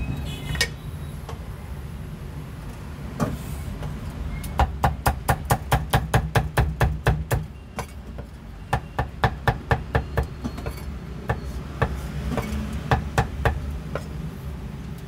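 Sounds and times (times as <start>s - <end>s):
cleaver chopping on wooden block: 4.6s - 7.4s.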